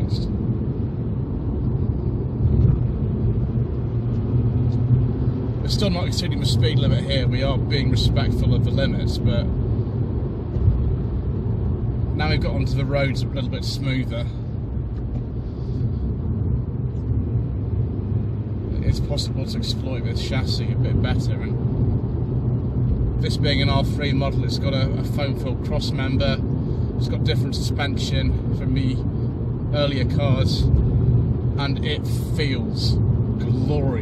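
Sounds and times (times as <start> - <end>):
road rumble: 0.0 - 34.0
rotary engine drone: 0.0 - 34.0.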